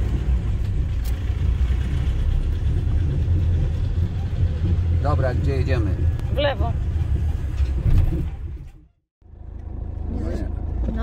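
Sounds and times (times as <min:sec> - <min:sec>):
engine and road rumble in cab: 0:00.0 - 0:11.0.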